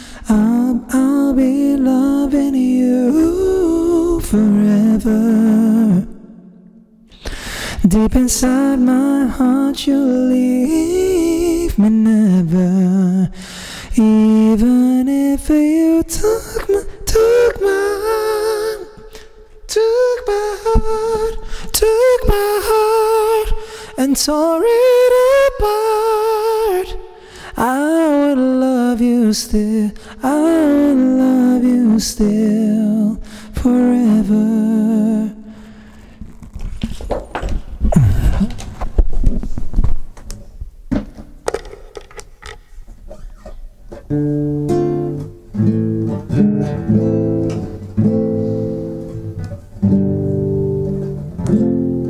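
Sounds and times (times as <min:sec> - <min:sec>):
man singing with harmony effect: 0:00.0 - 0:06.6, 0:07.8 - 0:35.5.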